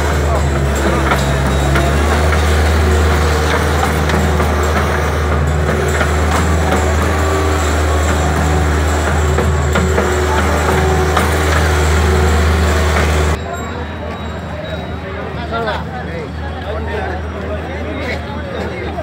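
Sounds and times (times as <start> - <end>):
loader diesel engine running: 0.0 - 13.4
loader scraping dirt: 0.0 - 13.4.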